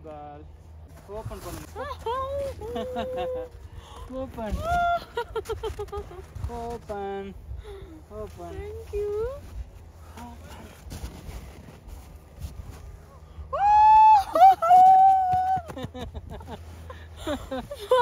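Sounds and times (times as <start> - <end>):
woman laughing: 1.8 - 3.6, 4.6 - 6.4, 14.0 - 18.0
woman squealing: 13.5 - 15.7.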